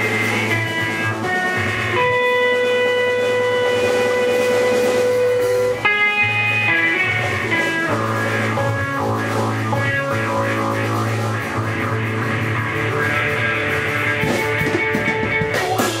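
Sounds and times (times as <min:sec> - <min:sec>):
electric guitar blues riff: 0:00.0 - 0:16.0.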